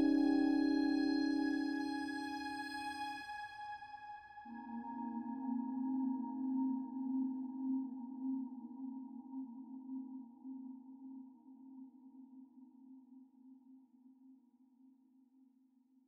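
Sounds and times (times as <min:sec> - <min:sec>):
sustained low ambient tone: 0:00.0 - 0:03.7.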